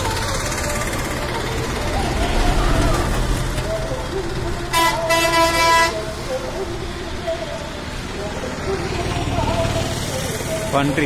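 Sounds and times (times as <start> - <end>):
vehicle horn honking: 4.7 - 6.1.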